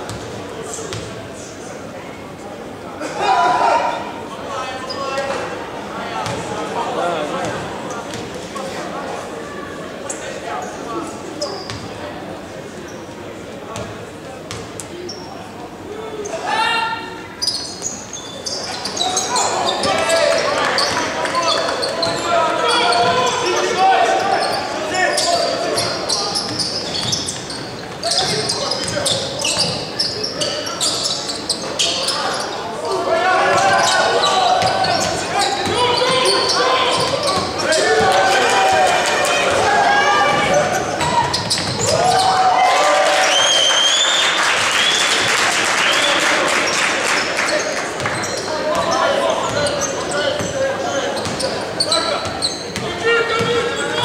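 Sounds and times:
players and spectators shouting: 0:15.9 - 0:17.3, 0:18.8 - 0:26.7, 0:31.8 - 0:44.1.

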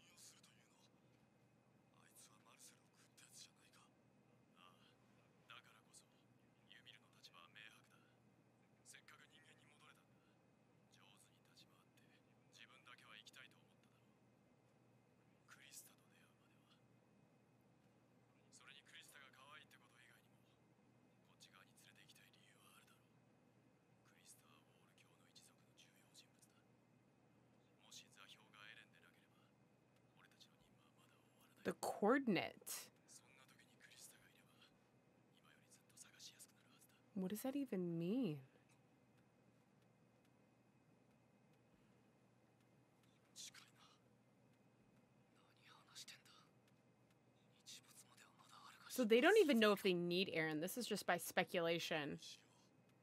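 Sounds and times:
faint whispered speech: 0:00.0 - 0:14.4, 0:15.3 - 0:17.0, 0:18.2 - 0:23.3, 0:24.0 - 0:26.8, 0:27.6 - 0:38.8, 0:43.1 - 0:44.2, 0:45.2 - 0:46.7, 0:47.3 - 0:52.8.

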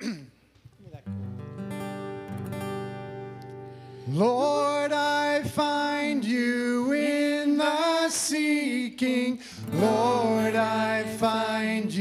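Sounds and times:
acoustic guitar strumming chords: 0:01.1 - 0:05.7, 0:09.5 - 0:12.0.

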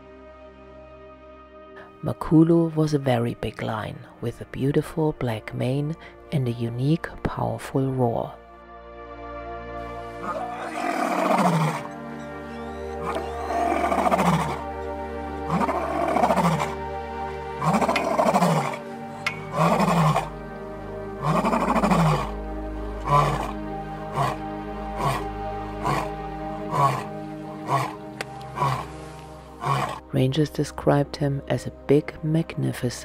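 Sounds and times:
background music with sustained notes: 0:00.0 - 0:33.0
lion roaring: 0:10.2 - 0:14.7, 0:15.4 - 0:16.8, 0:17.6 - 0:20.4, 0:21.2 - 0:22.4, 0:23.0 - 0:30.0
lion grunts: 0:19.5 - 0:20.3, 0:21.2 - 0:22.3, 0:23.0 - 0:24.4, 0:25.8 - 0:26.1, 0:26.7 - 0:29.0, 0:29.6 - 0:30.0.

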